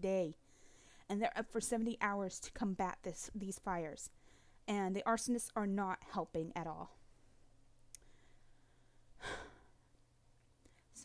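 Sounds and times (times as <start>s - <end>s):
woman sighing: 9.2s - 9.7s.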